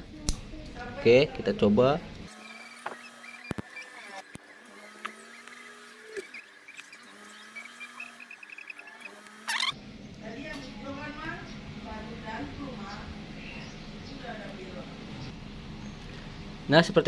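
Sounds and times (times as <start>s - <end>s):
faint background chirps: 2.3s - 11.6s.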